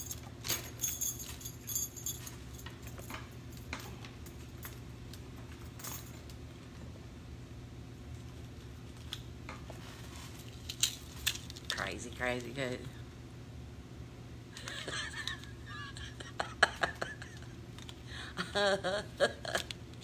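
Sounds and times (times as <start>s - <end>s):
metal jewelry jingling: 0.0s - 4.8s
steady low hum: 0.0s - 20.0s.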